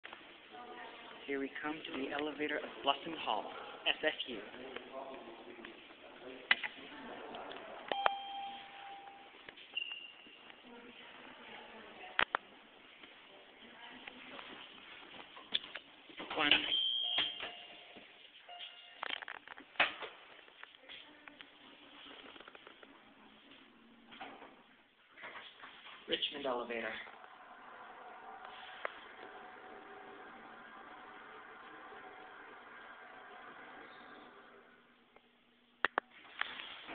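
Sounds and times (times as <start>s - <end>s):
elevator chime ding: 7.9s - 9.4s, 16.7s - 19.0s
higher tone: 7.9s - 10.0s
elevator doors sliding: 27.2s - 34.8s.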